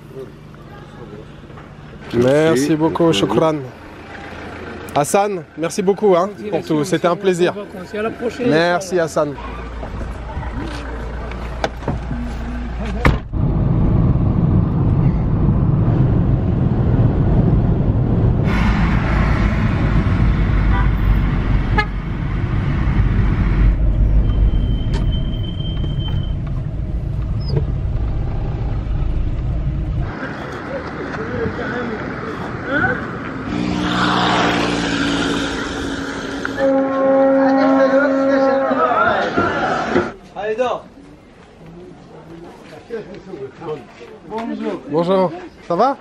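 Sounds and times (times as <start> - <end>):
car engine and tyres rumbling: 0.0 - 37.4
street traffic: 0.0 - 46.0.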